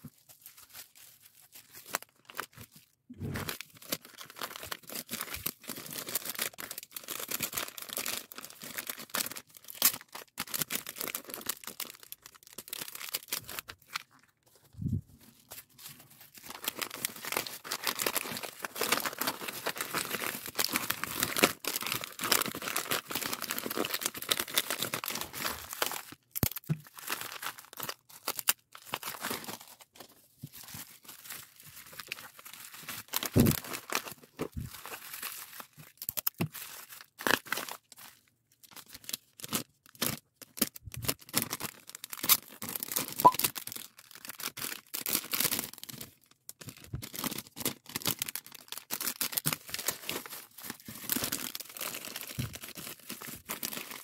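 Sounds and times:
plastic packaging crinkling: 0.0 - 54.0.

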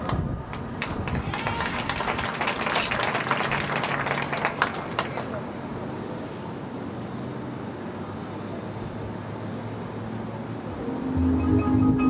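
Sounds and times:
crowd applause: 0.8 - 5.4.

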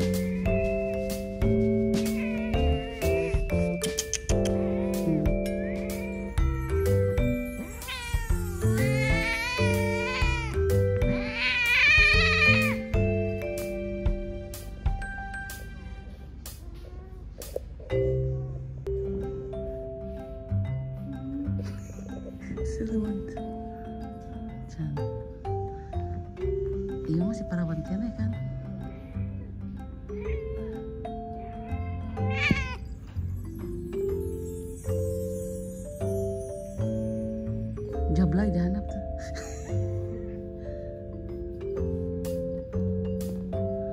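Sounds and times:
background music with held notes: 0.0 - 43.9
cat yowling: 5.1 - 10.6, 11.2 - 12.8, 31.4 - 32.9.

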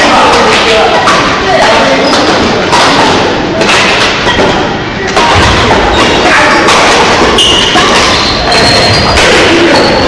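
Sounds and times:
racket striking shuttlecock: 2.1 - 8.2.

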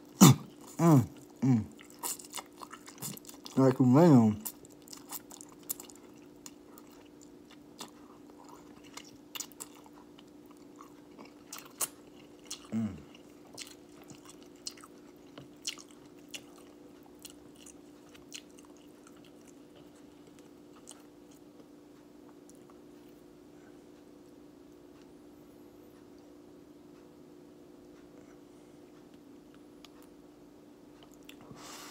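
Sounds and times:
person chewing noodles: 0.0 - 23.2, 31.0 - 31.4
faint steady hum: 0.0 - 31.9.

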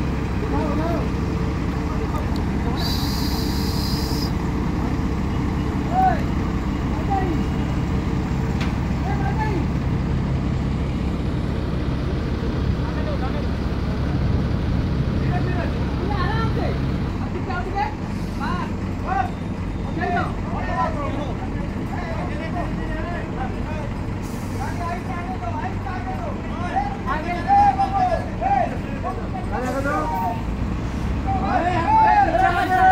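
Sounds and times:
heavy diesel crane engine: 0.0 - 32.9
men calling out: 31.2 - 32.9.

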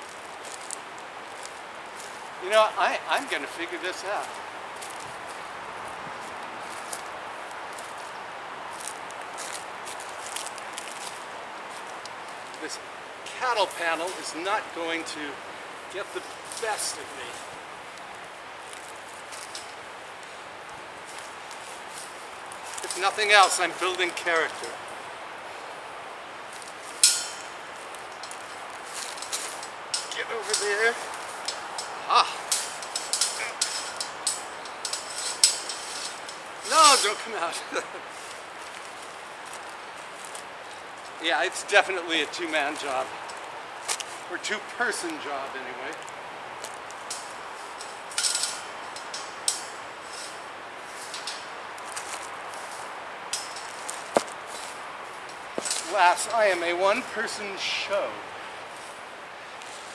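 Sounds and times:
outdoor background hiss: 0.0 - 59.9
wire panel rattling and scraping: 21.1 - 24.7, 26.6 - 38.4, 46.6 - 57.5.

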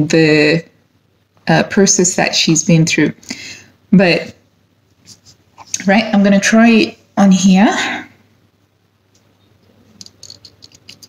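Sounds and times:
perfume bottle clicking and rattling: 10.0 - 11.0.

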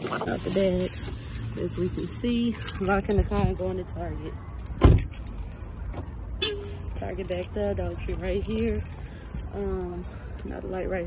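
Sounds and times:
keys jangling: 0.8 - 11.0.

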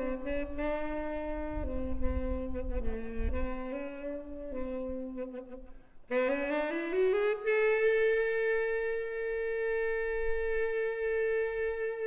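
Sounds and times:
solo wind instrument: 0.0 - 12.0.

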